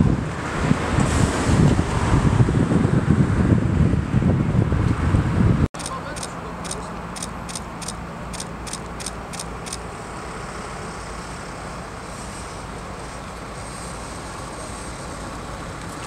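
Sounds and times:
city traffic rumble: 0.0 - 16.0.

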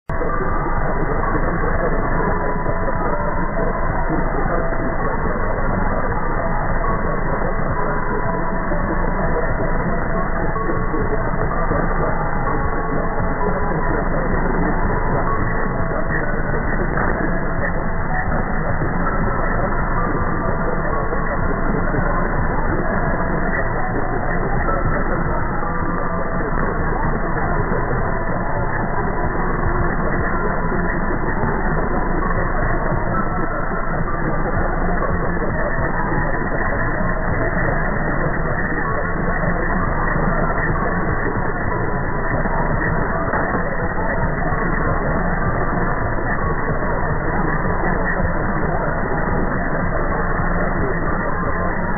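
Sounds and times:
radio music: 0.1 - 51.9.

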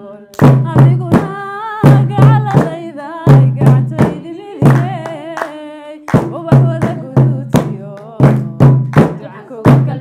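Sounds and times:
woman singing: 0.0 - 10.0
rhythmic clapping: 0.3 - 10.0
drum beats: 0.4 - 10.0.

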